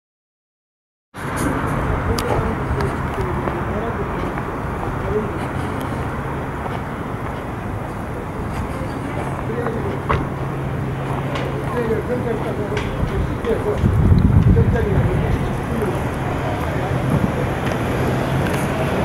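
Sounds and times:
traffic with low engine hum: 0:01.2 - 0:19.0
people talking indistinctly: 0:01.4 - 0:19.0.

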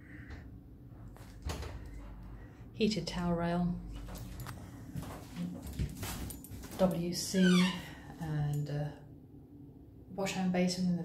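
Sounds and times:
footsteps: 0:04.0 - 0:07.0.

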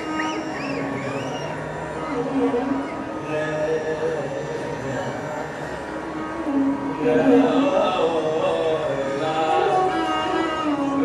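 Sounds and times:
high violin slides: 0:00.0 - 0:03.3
steady drone: 0:00.0 - 0:10.2.

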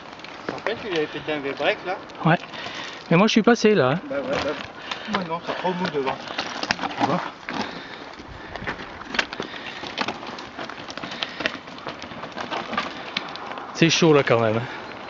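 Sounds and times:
bike knocking and rattling: 0:00.0 - 0:15.0
tyres grinding over loose stones: 0:00.0 - 0:15.0.

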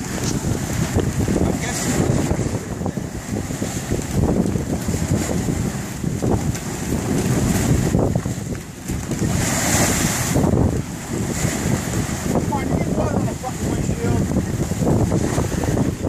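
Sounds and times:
water splashing along hull: 0:00.0 - 0:16.0
wind buffeting microphone: 0:00.0 - 0:16.0.

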